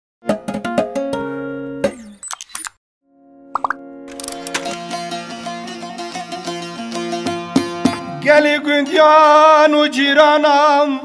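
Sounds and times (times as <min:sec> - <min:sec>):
clicking plops: 0:03.6 - 0:03.8
plucked-string jingle: 0:04.4 - 0:08.1.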